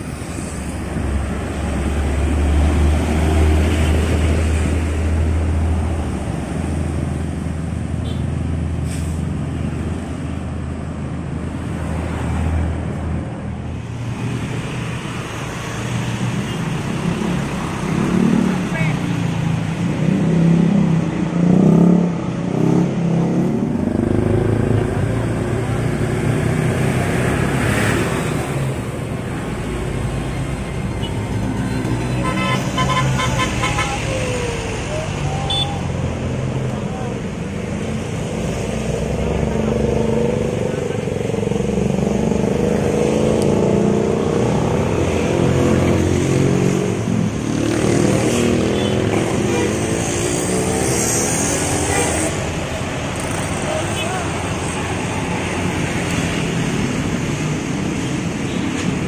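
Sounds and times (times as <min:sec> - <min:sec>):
bus diesel engines running: 0:00.0 - 0:59.0
motorcycles: 0:00.0 - 0:59.0
street traffic: 0:00.0 - 0:59.0
vehicle horn: 0:32.1 - 0:34.0, 0:35.5 - 0:35.8.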